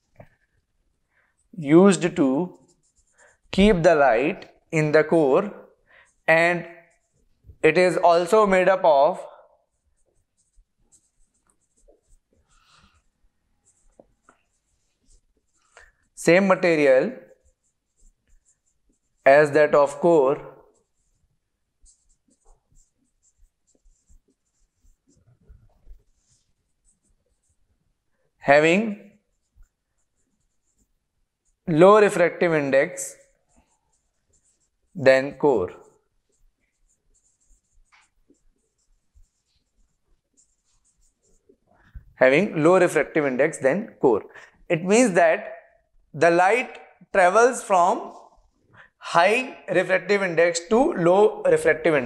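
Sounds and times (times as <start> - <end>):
marker squeaking on whiteboard: 1.4 - 8.3, 9.1 - 52.0.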